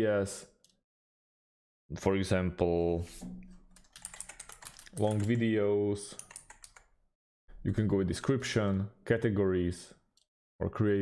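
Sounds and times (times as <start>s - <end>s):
keyboard typing clicks: 3.8s - 5.4s, 6.2s - 6.9s.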